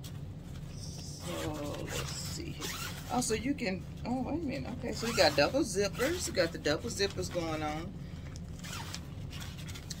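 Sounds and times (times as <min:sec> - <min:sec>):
zipper slider rasping: 0:08.6 - 0:09.0.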